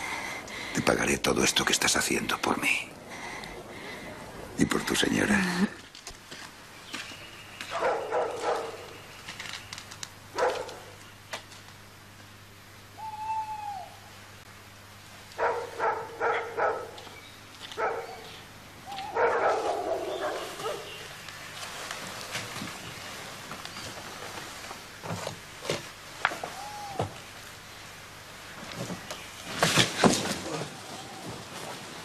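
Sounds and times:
dog barking: 0:07.7 - 0:09.0, 0:10.4 - 0:11.0, 0:15.4 - 0:17.0, 0:17.8 - 0:18.4, 0:19.0 - 0:21.0
short arching call: 0:13.0 - 0:14.1.

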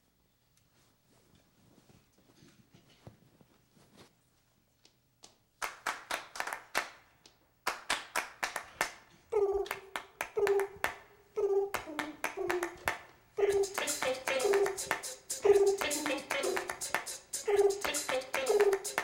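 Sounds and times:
percussive mouth clicks: 0:11.4 - 0:19.0
short sung notes: 0:13.4 - 0:19.0.

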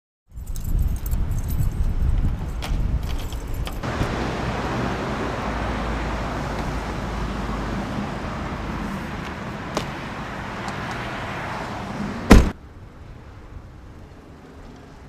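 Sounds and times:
light clicks and jingles: 0:00.3 - 0:03.8
road traffic rumble: 0:00.3 - 0:15.0.

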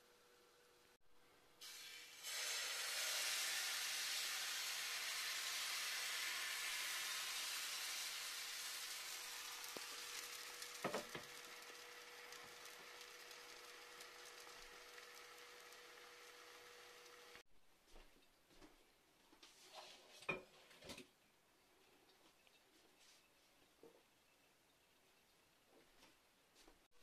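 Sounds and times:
batter sizzling in frying pan: 0:01.6 - 0:17.4.

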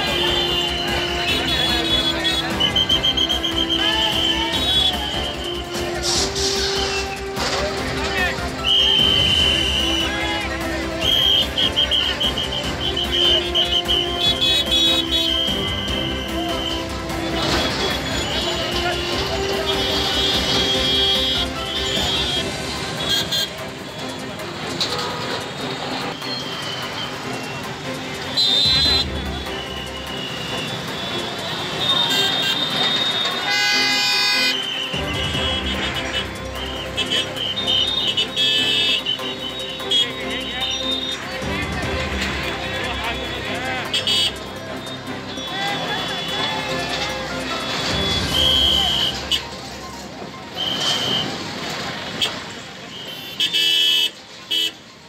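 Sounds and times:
vehicle horn honking: 0:00.0 - 0:05.5, 0:11.0 - 0:23.6, 0:28.3 - 0:41.1, 0:43.0 - 0:47.0, 0:47.6 - 0:49.6, 0:50.5 - 0:54.8
crowd voices: 0:00.0 - 0:53.4
busy street noise: 0:00.0 - 0:55.0.

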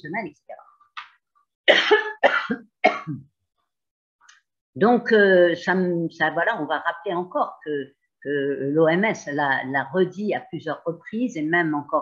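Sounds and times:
woman coughing: 0:01.7 - 0:03.3.

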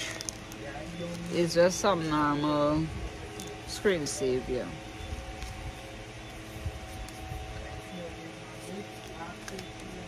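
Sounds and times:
paper packet tick: 0:09.0 - 0:09.9.

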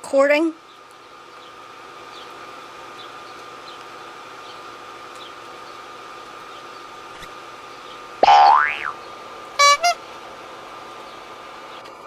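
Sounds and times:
constant high whine: 0:00.0 - 0:12.0
steady background hum: 0:00.0 - 0:12.0.

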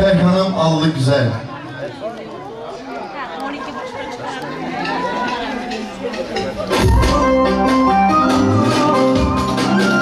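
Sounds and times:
people talking at once: 0:00.0 - 0:07.6.

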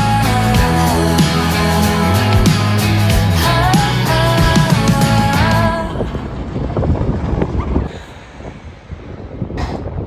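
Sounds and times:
wind buffeting microphone: 0:05.4 - 0:10.0.

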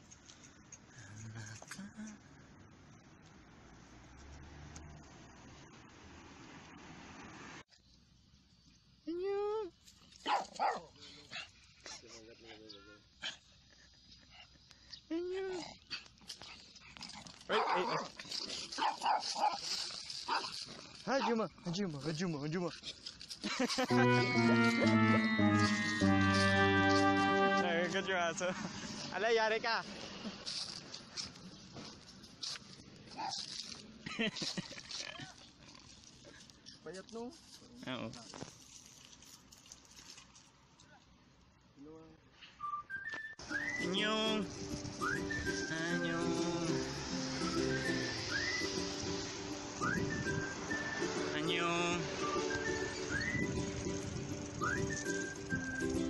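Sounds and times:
small dogs barking: 0:10.2 - 0:11.0, 0:17.4 - 0:21.4
dog drawn-out call: 0:17.5 - 0:19.6
small dogs whining and yipping: 0:52.2 - 0:53.8, 0:54.6 - 0:56.0.

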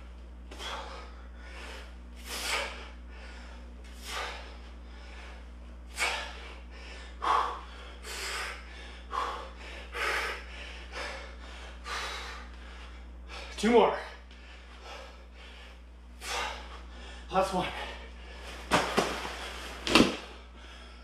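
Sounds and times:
man breathing hard: 0:00.5 - 0:18.7, 0:19.3 - 0:21.0.

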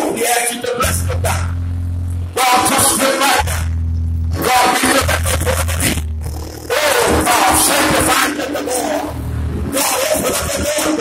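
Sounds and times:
held low notes: 0:00.6 - 0:11.0.

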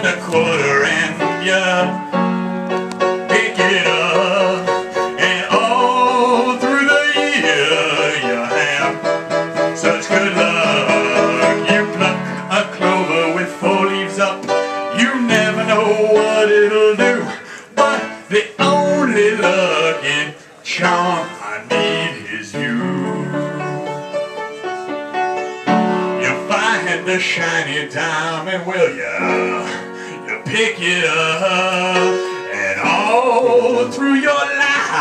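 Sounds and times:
upright piano chords and melody: 0:00.0 - 0:35.0.

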